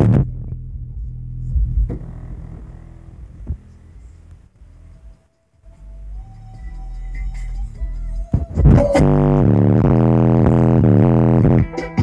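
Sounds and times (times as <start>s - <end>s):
bass-heavy music from car stereo: 0.0s - 12.0s.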